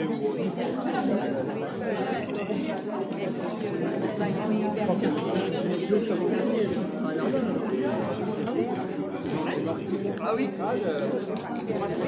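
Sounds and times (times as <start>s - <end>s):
babble of overlapping conversations: 0.0s - 12.0s.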